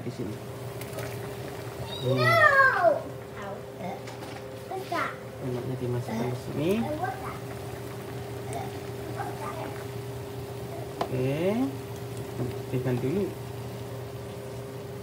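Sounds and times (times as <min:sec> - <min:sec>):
constant hum: 0:00.0 - 0:15.0
soup boiling and bubbling: 0:00.4 - 0:03.8, 0:05.7 - 0:15.0.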